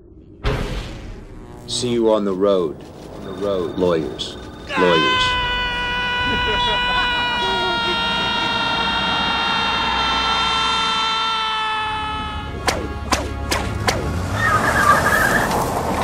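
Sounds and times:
sharp hits: 0.3s - 3.4s, 12.5s - 14.2s
long tone sinking in pitch: 1.4s - 11.3s.

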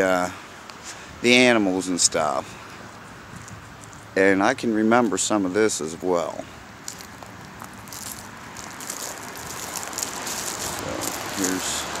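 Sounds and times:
footsteps through dry leaves: 6.8s - 12.0s.

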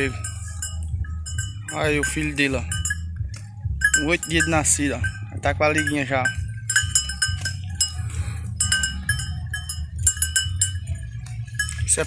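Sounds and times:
metal livestock bell clanking: 0.0s - 12.0s.

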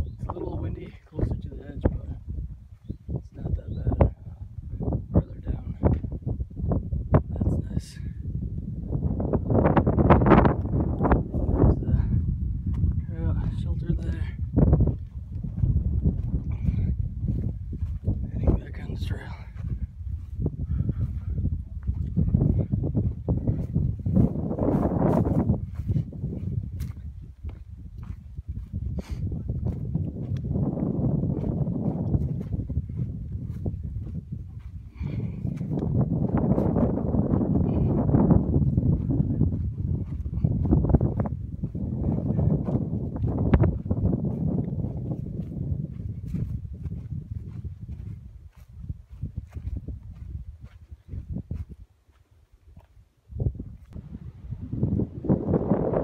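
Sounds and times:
footsteps on grassy trail: 0.0s - 5.0s, 8.3s - 56.0s
wind buffeting microphone: 0.0s - 56.0s.

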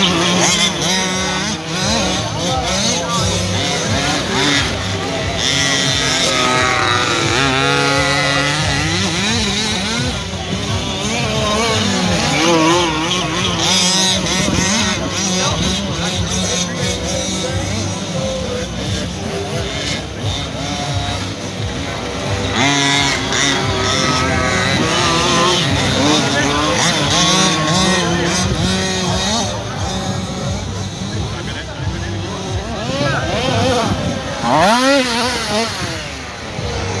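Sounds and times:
small two-stroke engines revving: 0.0s - 37.0s.

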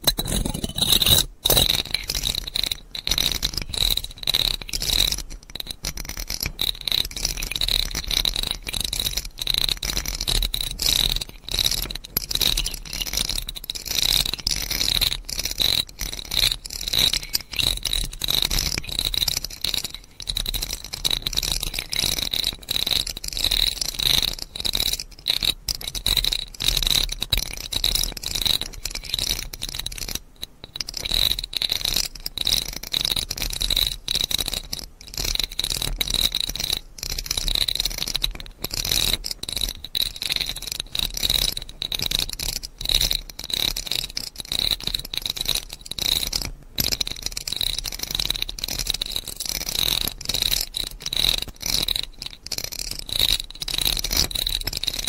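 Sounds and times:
rapid small scratches and clicks: 0.0s - 55.0s.

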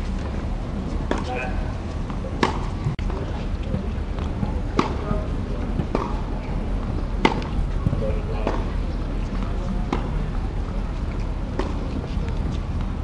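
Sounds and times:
murmur of voices: 0.6s - 13.0s
tennis balls struck with rackets: 0.8s - 10.3s, 11.1s - 12.9s.

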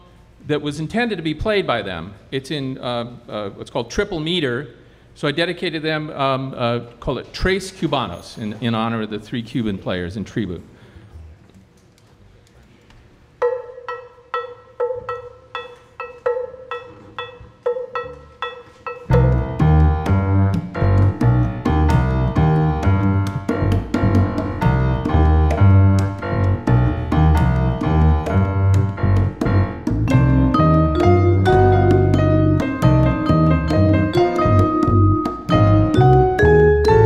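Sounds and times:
latin jazz band playing: 13.4s - 37.0s
repeated pitched instrument figure: 13.4s - 37.0s.

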